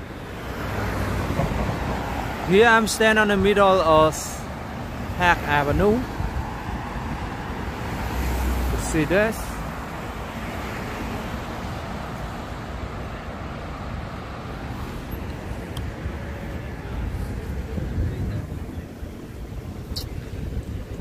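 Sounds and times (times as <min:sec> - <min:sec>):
road traffic rumble: 0:00.0 - 0:21.0
wind buffeting microphone: 0:05.8 - 0:08.3, 0:15.1 - 0:21.0.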